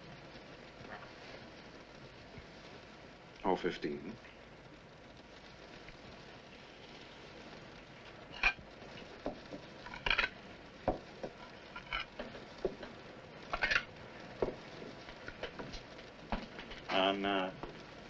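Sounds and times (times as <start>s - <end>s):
faint steady hiss: 0.0s - 18.0s.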